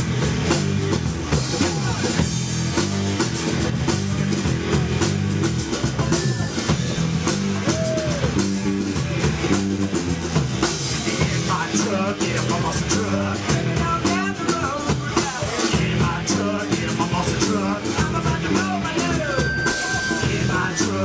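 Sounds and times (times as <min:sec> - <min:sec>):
drum kit steady beat: 0:00.0 - 0:21.0
electric guitar: 0:00.0 - 0:21.0.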